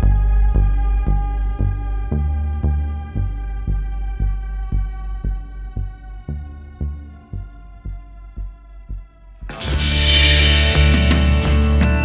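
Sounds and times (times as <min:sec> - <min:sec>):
soft low pulse: 0:00.0 - 0:11.2
held ambient chord: 0:00.0 - 0:12.0.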